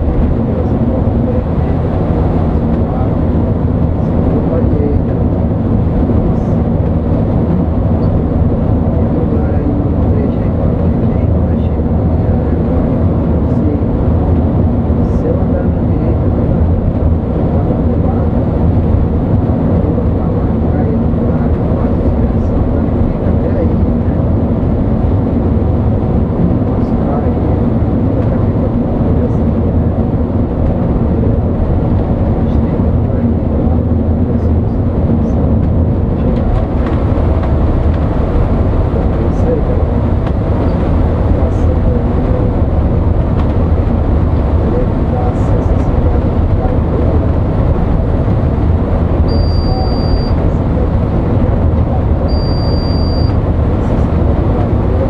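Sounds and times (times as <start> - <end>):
diesel engine drone: 0.0 - 55.0
tyre road noise: 0.0 - 55.0
short high-pitched beep: 49.3 - 50.4, 52.3 - 53.4.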